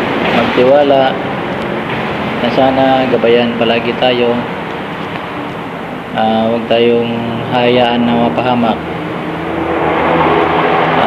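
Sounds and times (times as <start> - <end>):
vehicle passing close by: 7.9 - 11.0.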